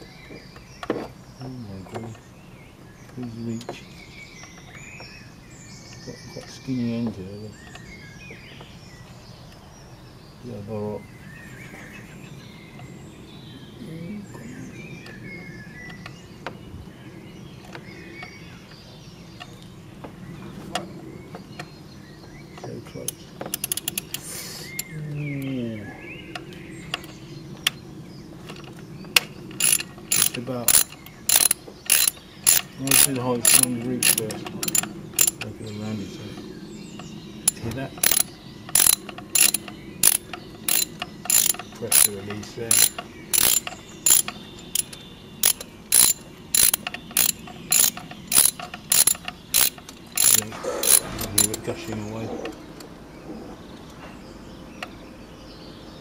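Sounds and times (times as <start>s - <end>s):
hand ratchet clicking: 23.5s - 24.2s, 29.6s - 35.4s, 37.4s - 51.6s
tool handling sounds: 28.4s - 35.5s, 37.4s - 52.6s.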